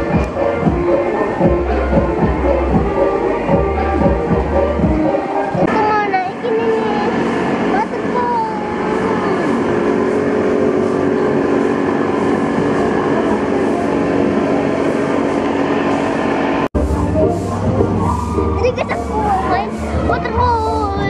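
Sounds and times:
people's voices: 0.0 - 14.8, 16.8 - 21.0
steady machine drone: 0.0 - 21.0.

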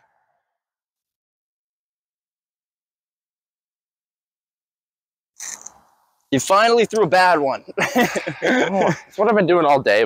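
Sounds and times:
brief outdoor rustle: 5.4 - 5.9.

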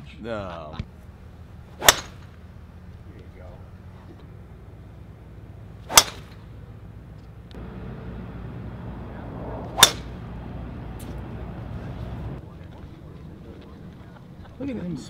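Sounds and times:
golf club striking ball: 1.8 - 2.4, 5.9 - 6.4, 9.6 - 10.3.

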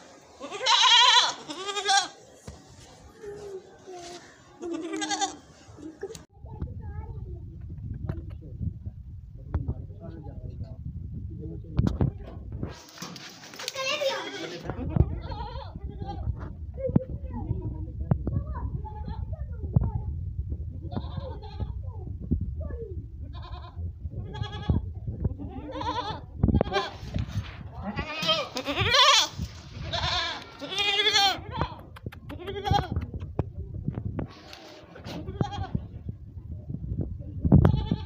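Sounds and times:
goats bleating: 0.4 - 2.2, 4.6 - 5.5, 27.8 - 29.3, 29.9 - 31.8.

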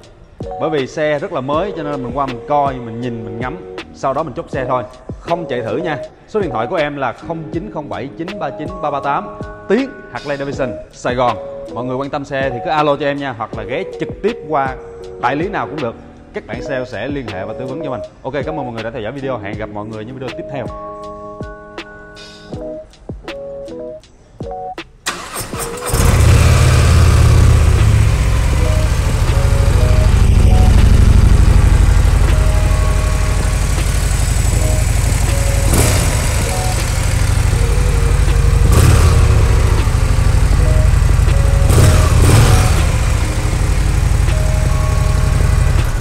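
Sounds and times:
motorcycle engine starting: 25.0 - 46.0
motorcycle engine idling: 25.8 - 46.0.

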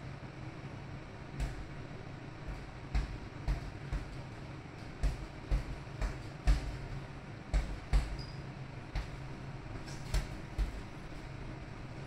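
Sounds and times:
steady low hum: 0.0 - 12.0
gloves punching a bag: 1.4 - 1.8, 2.4 - 10.9.

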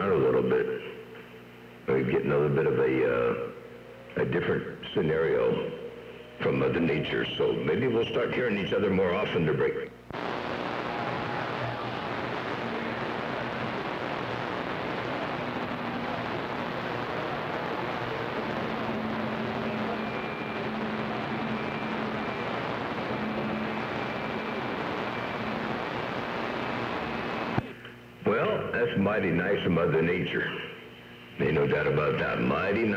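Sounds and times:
radio static hiss: 0.0 - 32.9
faint whistling tones: 19.4 - 24.6.

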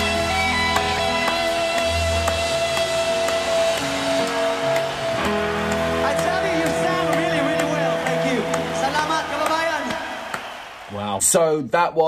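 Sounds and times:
live rock ballad with guitar: 0.0 - 7.2.

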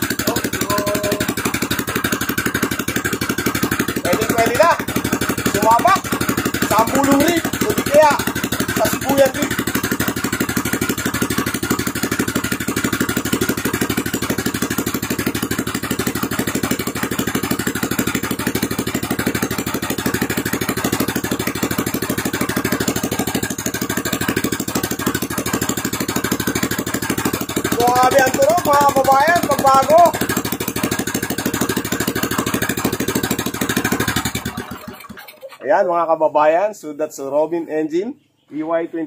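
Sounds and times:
engine idling: 0.0 - 35.7
person speaking: 0.2 - 1.4, 4.0 - 9.6, 27.7 - 30.2, 35.6 - 39.0.

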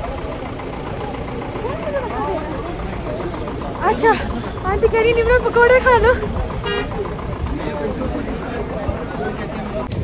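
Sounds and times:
distant voices: 0.0 - 10.0
steady low rumble: 0.0 - 10.0.

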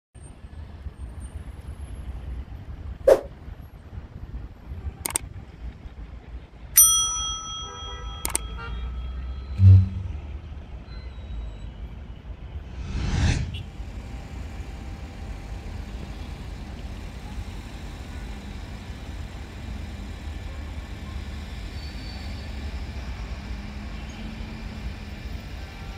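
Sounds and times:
street traffic rumble: 0.2 - 25.9
notification bell ding: 6.8 - 10.1.

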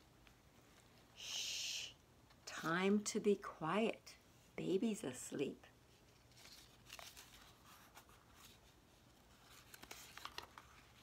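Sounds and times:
paper pages rustling: 6.0 - 11.0
page turning clicks: 9.6 - 10.8.

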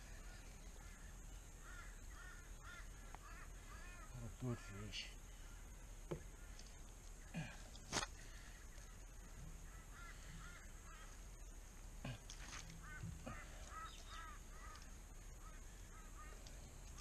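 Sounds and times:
faint arched bird calls: 0.0 - 17.0.

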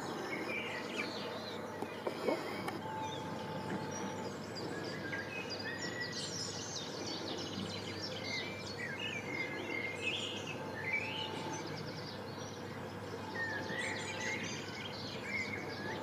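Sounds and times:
outdoor background noise: 0.0 - 16.0
small birds chirping: 0.0 - 16.0.

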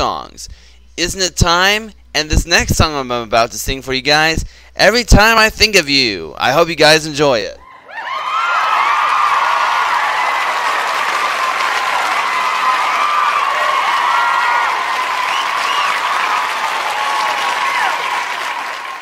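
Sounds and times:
crowd cheering: 7.6 - 19.0
crowd applause: 7.9 - 19.0
whistles from crowd: 15.2 - 16.3.

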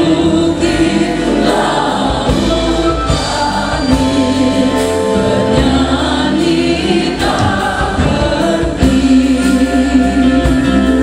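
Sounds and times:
instrumental accompaniment: 0.0 - 11.0
people singing a hymn: 0.0 - 11.0.

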